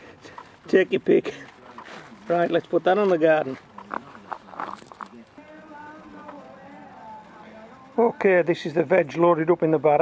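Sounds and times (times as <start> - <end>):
faint background music: 0.0 - 10.0
leaves rustling: 0.1 - 5.4.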